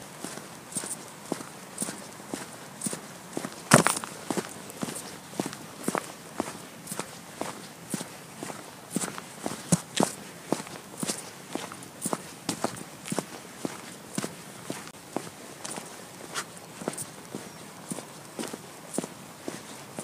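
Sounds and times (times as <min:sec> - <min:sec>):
boot footsteps on concrete: 0:00.2 - 0:19.7.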